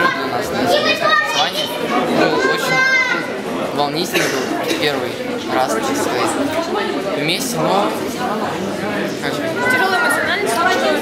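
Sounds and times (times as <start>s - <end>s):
young voice talking: 0.0s - 3.3s, 9.2s - 11.0s
children chattering: 0.0s - 11.0s.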